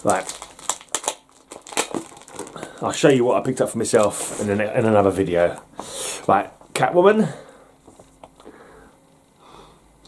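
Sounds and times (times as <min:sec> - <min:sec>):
plastic bags crinkling: 0:00.0 - 0:05.0.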